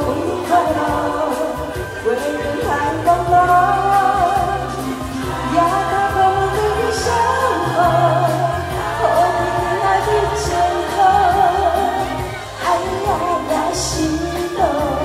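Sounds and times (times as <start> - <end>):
backing music with bass line: 0.0 - 15.0
woman singing with vibrato: 0.0 - 15.0.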